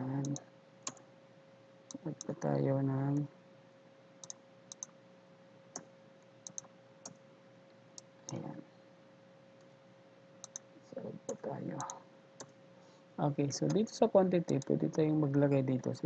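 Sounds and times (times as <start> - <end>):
faint steady hum: 0.0 - 16.0
mouse and keyboard clicks: 0.2 - 1.0, 5.8 - 7.2, 10.4 - 10.7.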